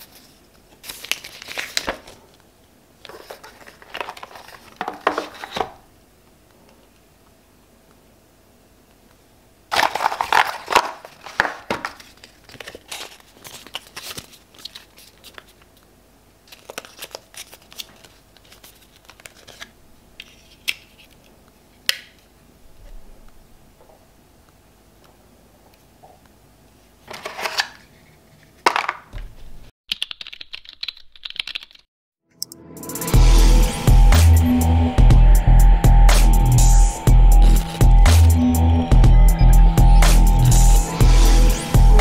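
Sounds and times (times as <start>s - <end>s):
cardboard and paper rustling: 0.0s - 2.4s, 3.0s - 5.8s, 9.7s - 15.8s, 16.4s - 21.2s, 27.1s - 28.9s
computer keyboard typing: 29.9s - 32.6s.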